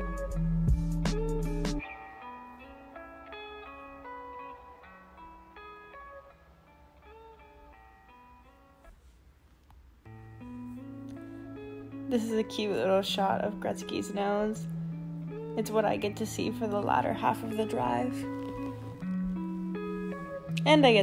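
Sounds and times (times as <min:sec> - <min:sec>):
plucked guitar music: 0:00.0 - 0:09.2, 0:10.0 - 0:21.0.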